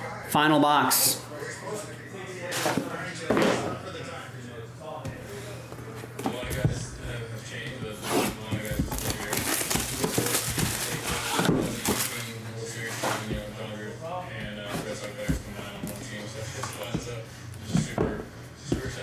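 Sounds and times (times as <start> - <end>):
cardboard box handling: 8.0 - 12.2
plastic wrap crinkling and tearing: 8.9 - 12.3.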